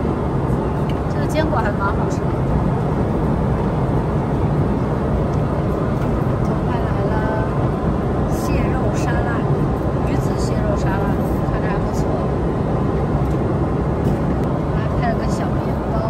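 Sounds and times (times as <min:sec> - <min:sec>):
airliner cabin rush: 0:00.0 - 0:16.0.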